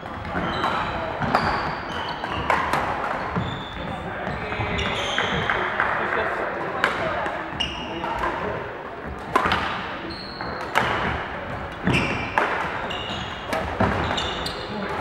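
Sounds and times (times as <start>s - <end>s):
shoes squeaking on wooden floor: 0.0s - 5.7s, 7.5s - 8.2s, 9.0s - 15.0s
rackets striking shuttlecocks: 0.0s - 7.4s, 8.0s - 15.0s
players chattering in echoing hall: 0.0s - 15.0s.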